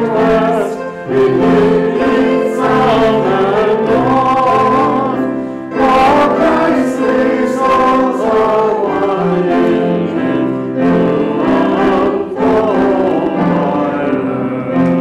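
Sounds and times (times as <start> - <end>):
congregation singing a hymn: 0.0 - 15.0.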